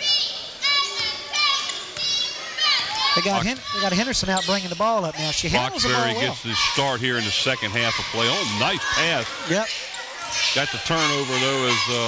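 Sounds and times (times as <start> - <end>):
young voices shouting and cheering: 0.0 - 4.2, 5.2 - 12.0.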